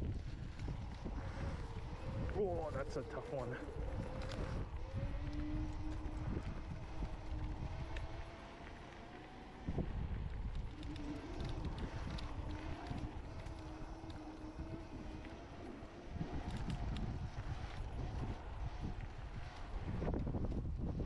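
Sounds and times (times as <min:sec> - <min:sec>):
electric motor whining: 0:00.0 - 0:21.0
scooter rattling: 0:00.0 - 0:21.0.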